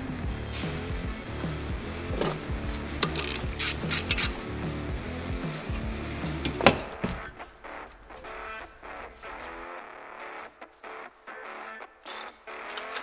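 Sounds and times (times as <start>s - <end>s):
background music: 0.0s - 13.0s
metal clicks and clanks: 2.1s - 4.4s, 12.0s - 13.0s.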